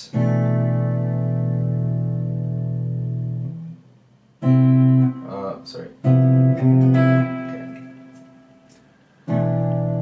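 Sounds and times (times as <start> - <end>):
clean electric guitar chords: 0.0 - 3.8, 4.4 - 10.0.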